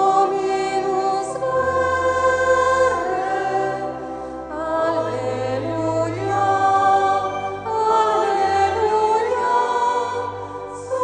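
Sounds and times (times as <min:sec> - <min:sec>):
choir singing a hymn: 0:00.0 - 0:11.0
low sustained bass notes: 0:00.0 - 0:11.0.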